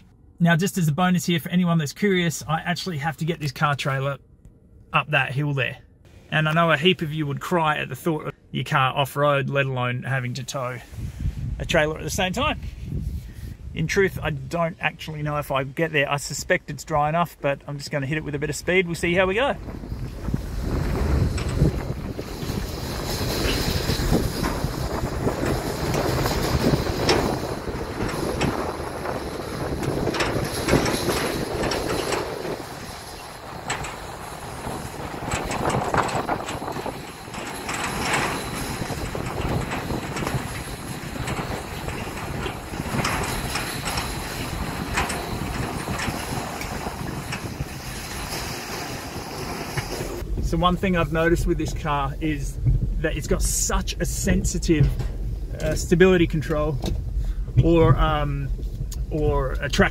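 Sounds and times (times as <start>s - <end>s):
trailer rattling and knocking: 13.9s - 59.9s
tyres crunching over dirt track: 13.9s - 59.9s.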